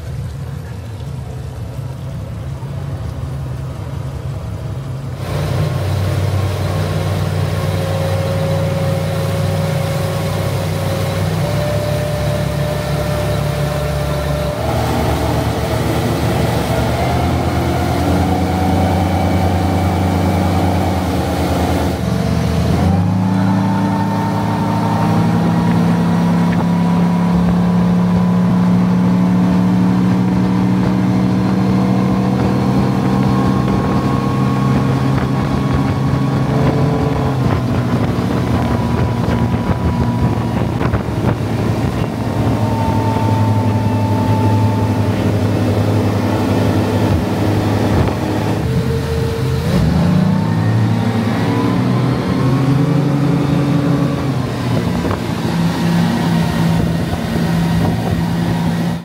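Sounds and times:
outboard engine running: 0.0s - 59.0s
water rushing past hull: 0.0s - 59.0s.

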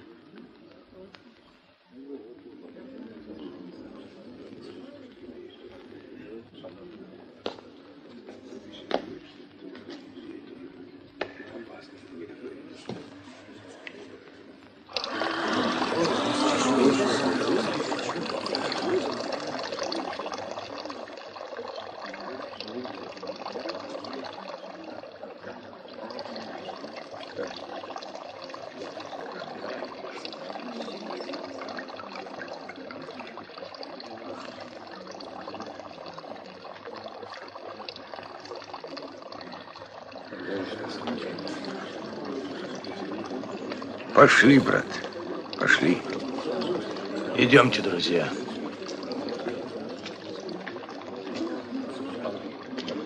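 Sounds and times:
water gushing from fountain: 12.5s - 53.0s.

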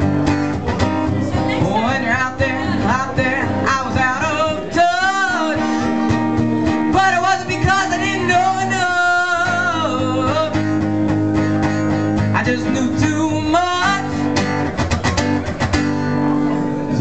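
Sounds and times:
strummed acoustic guitar: 0.0s - 17.0s
person singing: 1.1s - 10.8s, 11.7s - 14.5s.

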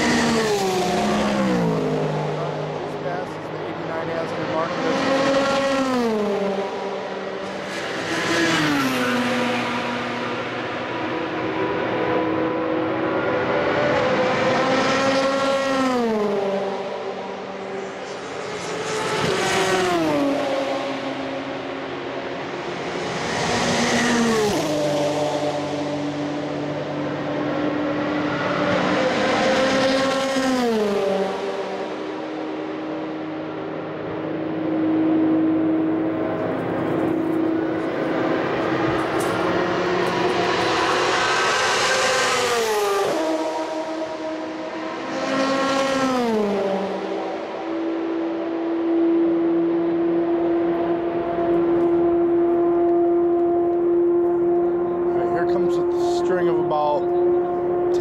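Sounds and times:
race cars passing by: 0.0s - 58.0s.

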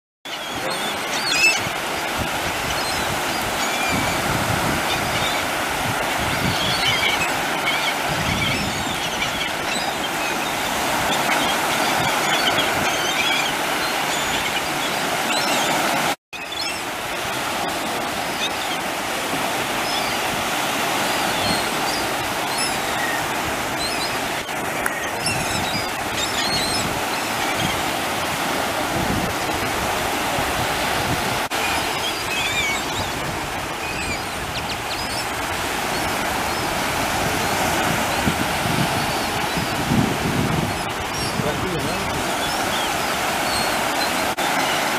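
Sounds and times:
gulls calling: 0.2s - 44.9s
waves washing and lapping: 0.3s - 44.9s.

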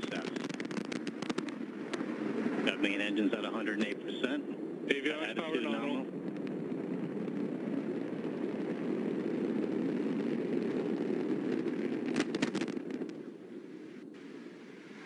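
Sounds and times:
rocket explosion rumble: 0.0s - 15.0s
sharp crackles: 0.0s - 15.0s.

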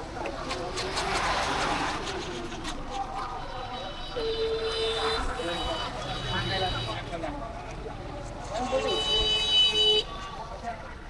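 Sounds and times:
passers-by talking: 0.0s - 11.0s
rumble of auto-rickshaw traffic: 0.0s - 11.0s.

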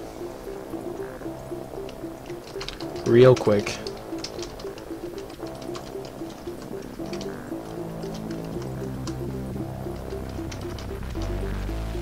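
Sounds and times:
quiet background music: 0.0s - 12.0s
computer keyboard clicking: 0.7s - 12.0s.

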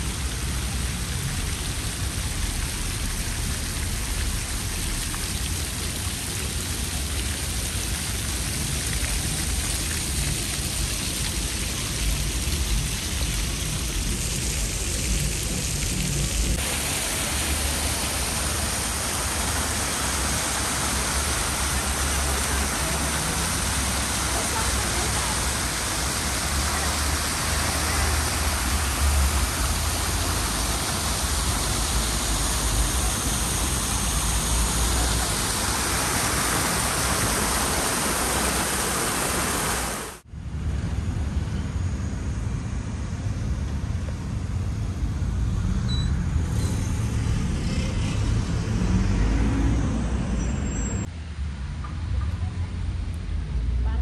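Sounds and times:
fountain water splashing: 0.0s - 40.2s.

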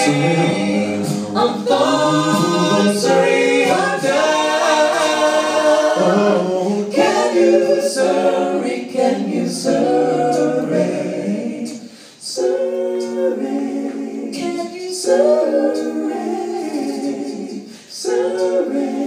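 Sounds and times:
a cappella group singing harmony: 0.0s - 19.0s.

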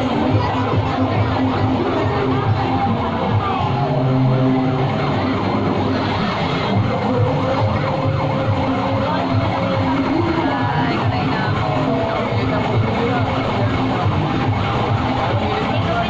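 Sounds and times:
crowd noise: 0.0s - 16.0s
parade music: 0.0s - 16.0s.

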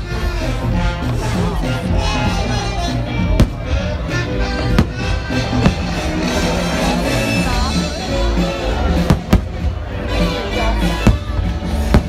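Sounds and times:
loud show music: 0.0s - 12.0s.

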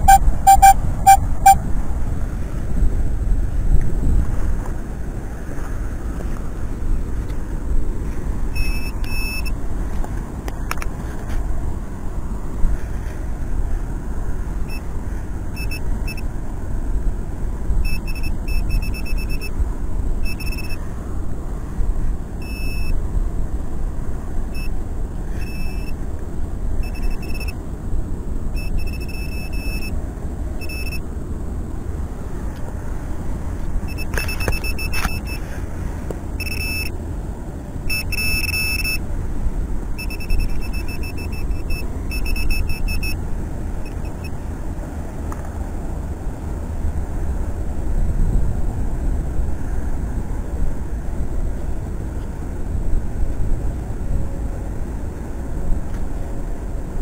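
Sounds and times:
pinpointer beeping: 0.0s - 1.6s, 8.5s - 9.6s, 15.6s - 16.2s, 17.8s - 19.5s, 20.2s - 20.8s, 22.4s - 23.0s, 24.6s - 24.8s, 25.4s - 26.0s, 26.8s - 27.6s, 28.6s - 30.0s, 30.6s - 31.0s, 33.9s - 35.4s, 36.4s - 37.0s, 37.9s - 39.0s, 40.0s - 43.2s, 43.8s - 44.4s
wind rumble on microphone: 0.0s - 29.0s, 39.0s - 57.0s.

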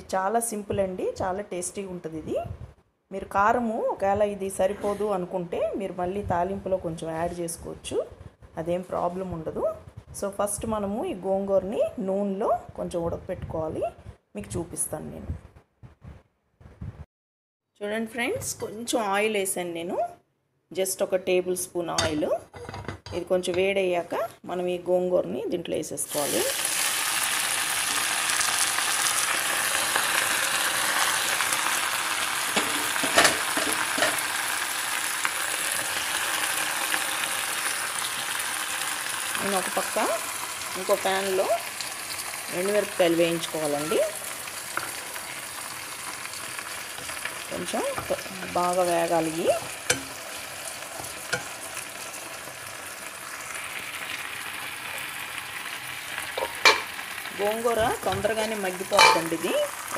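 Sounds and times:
leaves sizzling in hot oil: 26.1s - 59.9s.

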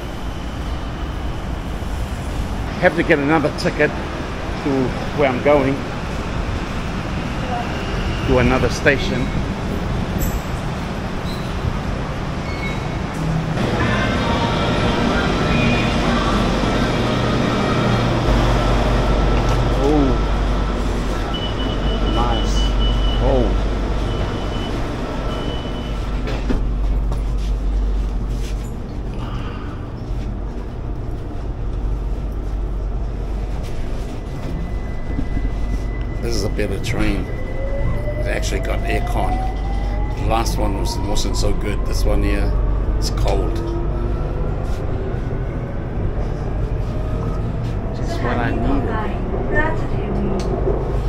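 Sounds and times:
steady multi-tone whine: 0.0s - 5.8s, 13.5s - 49.8s
train carriage rumble: 0.0s - 51.0s.

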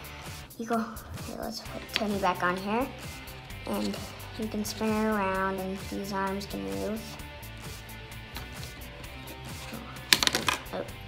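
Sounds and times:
plastic toy bricks clattering: 9.6s - 10.8s.

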